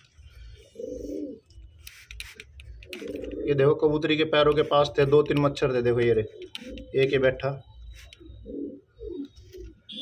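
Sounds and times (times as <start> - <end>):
pigeon cooing: 0.6 - 1.4, 2.9 - 3.8, 6.2 - 7.0, 8.2 - 9.8.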